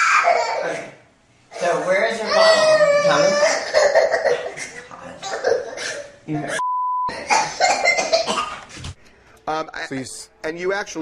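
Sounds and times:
person speaking: 1.6 - 3.6
censor bleep tone: 6.6 - 7.1.

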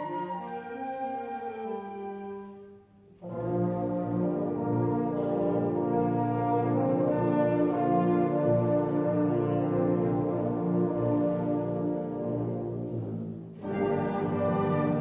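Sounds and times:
concert band playing sustained chords: 3.2 - 15.0.

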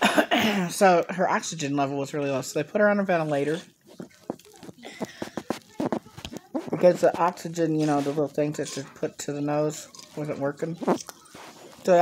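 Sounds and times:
mouth clicks and smacks: 3.8 - 8.1, 10.8 - 12.0
chewing with mouth open: 10.8 - 12.0.

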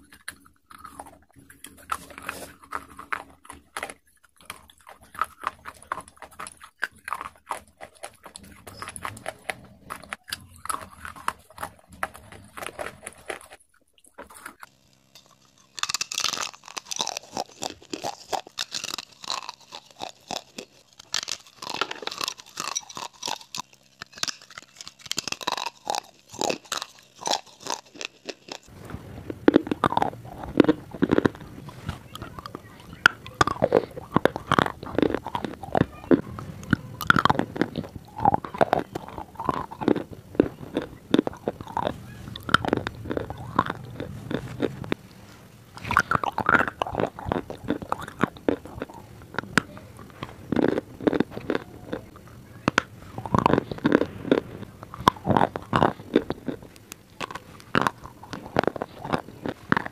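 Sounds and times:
crunching and chewing: 0.0 - 59.9.

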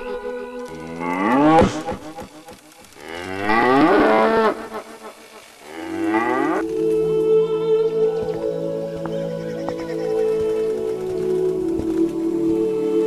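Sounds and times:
cattle mooing: 3.0 - 5.0
soft background music: 5.6 - 13.0.

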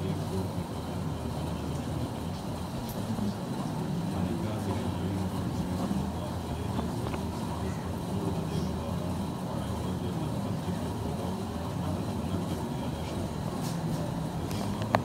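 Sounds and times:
men talking quietly: 0.0 - 15.0.

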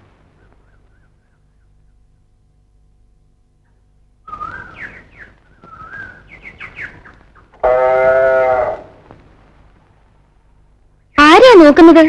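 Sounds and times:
birds chirping: 0.0 - 2.5, 3.5 - 12.0
calf mooing: 7.6 - 9.0.

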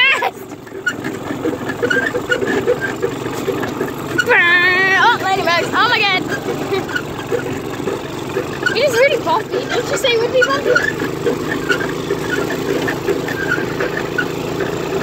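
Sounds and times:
go-kart engine running: 0.0 - 15.0.

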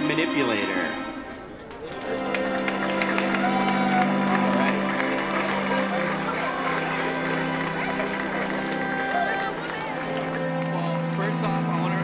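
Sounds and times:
crowd murmuring: 0.0 - 12.0
music with held tones: 1.9 - 12.0.

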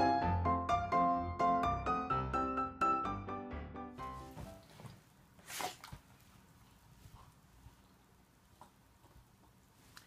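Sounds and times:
piano music: 0.0 - 4.7.

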